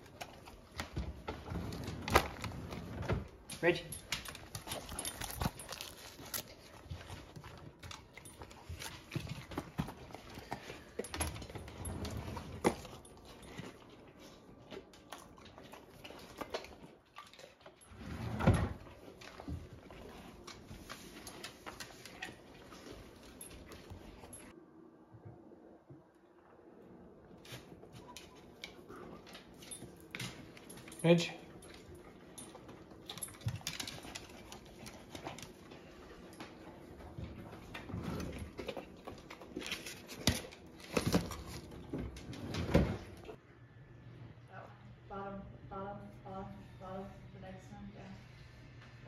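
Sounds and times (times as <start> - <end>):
dog eating with smacking lips: 0.0 - 18.0, 18.8 - 24.5, 27.2 - 43.4.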